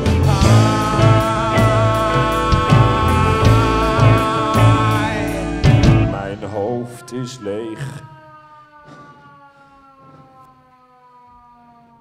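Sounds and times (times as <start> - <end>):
held tone gliding down in pitch: 0.3 - 10.4.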